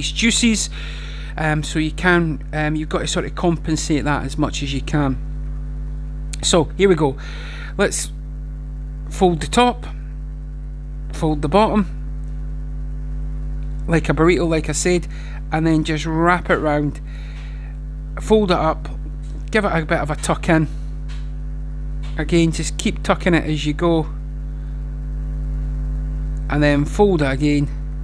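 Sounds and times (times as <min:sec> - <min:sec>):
man speaking: 0:00.0 - 0:00.8, 0:01.4 - 0:05.2, 0:06.4 - 0:08.2, 0:09.1 - 0:10.0, 0:11.1 - 0:12.0, 0:13.9 - 0:17.0, 0:18.2 - 0:20.8, 0:22.1 - 0:24.2, 0:26.5 - 0:27.8
low electrical hum: 0:00.0 - 0:28.0.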